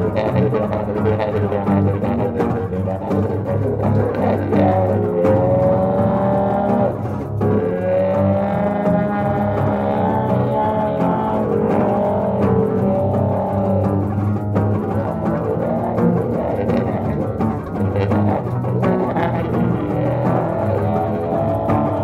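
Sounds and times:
muted trombone: 0:00.0 - 0:14.1, 0:14.8 - 0:22.0
electric bass played fingerstyle: 0:00.0 - 0:22.0
trombone: 0:15.0 - 0:21.8.

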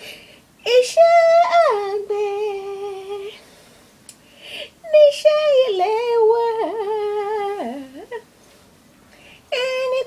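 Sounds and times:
woman singing unaccompanied: 0:00.6 - 0:03.5, 0:04.6 - 0:08.3, 0:09.4 - 0:10.0.

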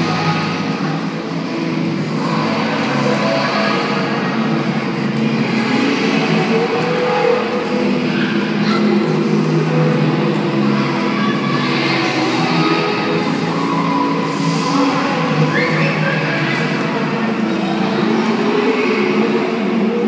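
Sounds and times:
music playing: 0:00.0 - 0:20.0.

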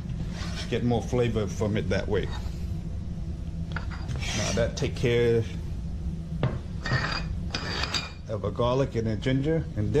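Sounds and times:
dishes scraping across tile: 0:03.7 - 0:04.7, 0:06.8 - 0:08.2
ceramic dishes clinking: 0:06.8 - 0:08.2.

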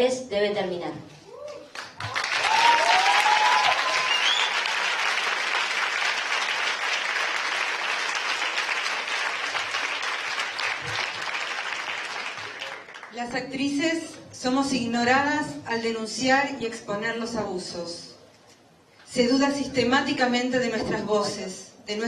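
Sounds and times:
audience applauding: 0:01.7 - 0:13.2.

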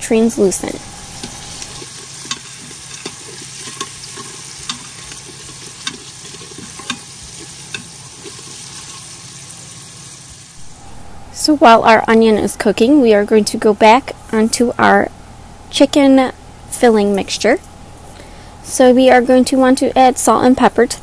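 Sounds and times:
onion being stirred: 0:00.0 - 0:10.5
onion sizzling in oil: 0:00.0 - 0:10.8
utensil clicking against pot: 0:02.2 - 0:08.5.

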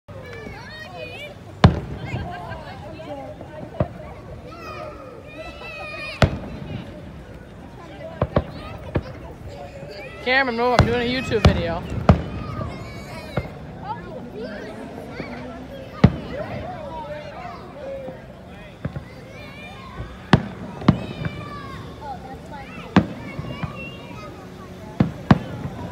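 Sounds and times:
people's voices: 0:00.1 - 0:25.9.

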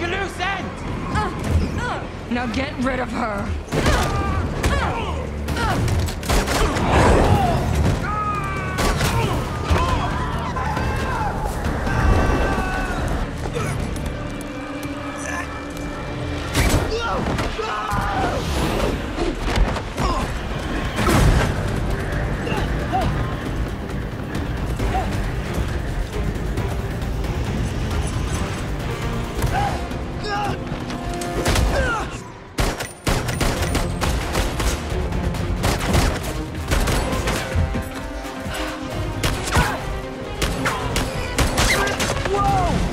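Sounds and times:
action film score music: 0:00.0 - 0:42.9
sharp bangs and impacts: 0:30.8 - 0:42.9.

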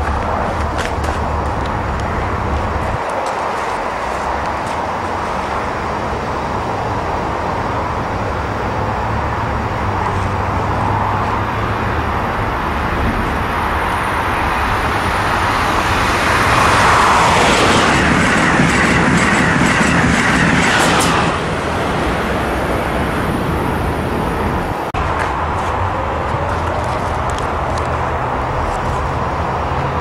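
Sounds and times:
high-speed train passing: 0:00.0 - 0:30.0.

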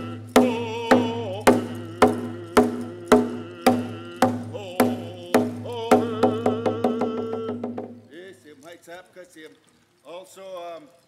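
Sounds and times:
hand drum beating: 0:00.0 - 0:08.1
man singing: 0:00.0 - 0:08.4.

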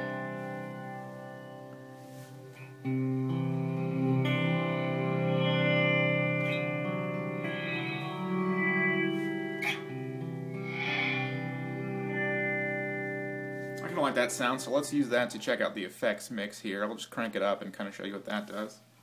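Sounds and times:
electric guitar with long reverb: 0:00.0 - 0:14.9.

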